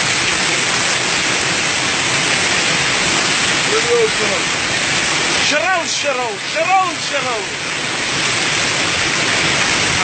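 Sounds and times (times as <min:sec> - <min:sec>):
waterfall rushing: 0:00.0 - 0:10.0.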